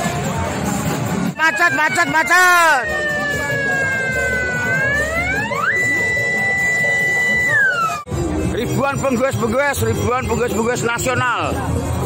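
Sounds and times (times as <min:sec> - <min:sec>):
electronic siren wailing: 0:01.4 - 0:08.1.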